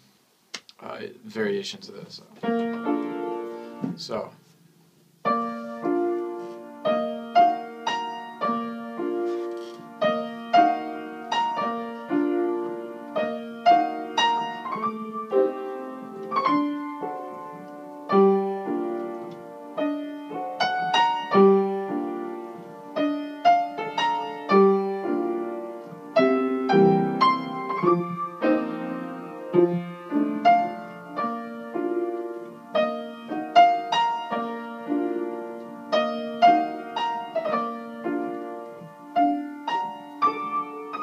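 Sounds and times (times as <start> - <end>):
electric piano ballad: 2.4 - 4.3, 5.2 - 41.0.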